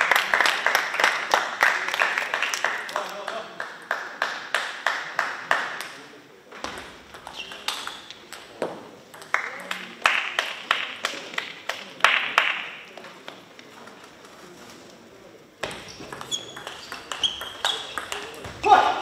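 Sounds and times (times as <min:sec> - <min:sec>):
table tennis ball bouncing: 0:06.6 - 0:09.7, 0:15.6 - 0:18.7.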